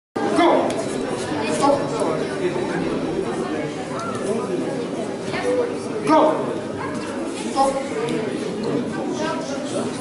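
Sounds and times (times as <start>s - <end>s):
spectators chattering: 0.2s - 10.0s.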